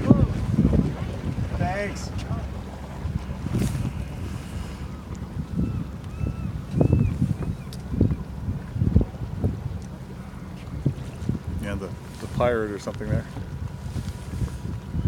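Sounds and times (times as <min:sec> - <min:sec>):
boat engine droning: 0:00.0 - 0:15.0
wind buffeting microphone: 0:00.0 - 0:15.0.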